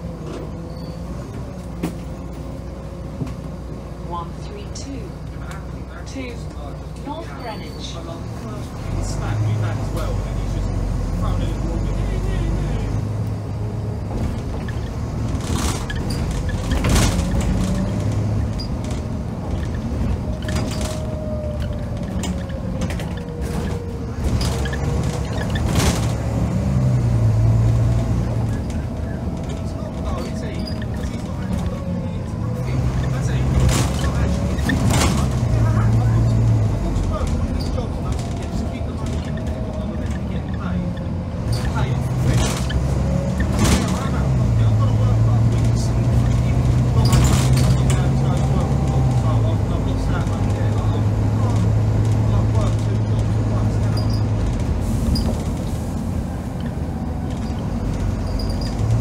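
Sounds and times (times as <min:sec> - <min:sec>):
bus diesel engine pulling hard: 0:00.0 - 0:59.0
bodywork rattles: 0:14.0 - 0:26.6.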